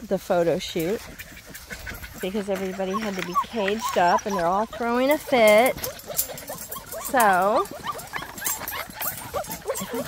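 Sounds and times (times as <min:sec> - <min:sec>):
puppies whining and yipping: 0:00.7 - 0:10.0.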